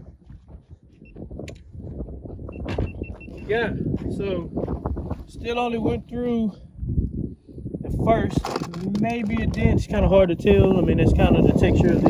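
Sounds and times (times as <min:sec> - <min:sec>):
footsteps on dirt: 0:00.0 - 0:05.5
wind rumbling on microphone: 0:00.0 - 0:12.0.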